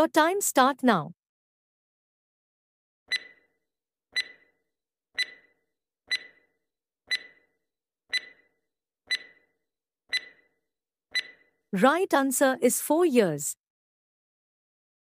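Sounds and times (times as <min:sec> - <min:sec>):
clock ticking with metallic ring: 0:03.1 - 0:03.5, 0:04.2 - 0:04.5, 0:05.2 - 0:06.5, 0:07.1 - 0:07.5, 0:08.1 - 0:08.5, 0:09.1 - 0:09.5, 0:10.1 - 0:10.5, 0:11.1 - 0:11.5.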